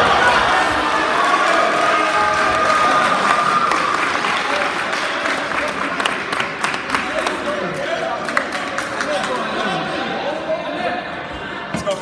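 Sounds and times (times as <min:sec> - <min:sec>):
crowd clapping and cheering: 0:00.0 - 0:09.8
scattered individual claps: 0:02.4 - 0:09.4.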